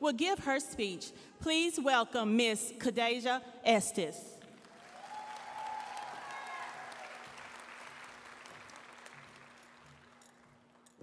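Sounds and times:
audience applauding: 4.6 - 10.8.

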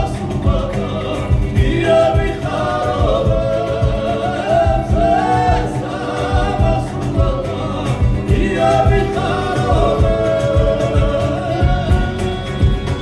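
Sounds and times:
folk choir singing in parts: 0.0 - 13.0.

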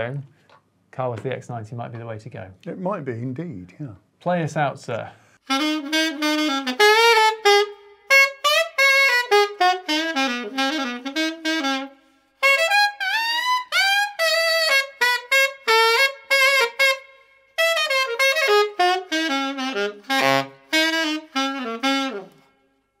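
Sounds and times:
alto saxophone melody: 5.4 - 23.0.

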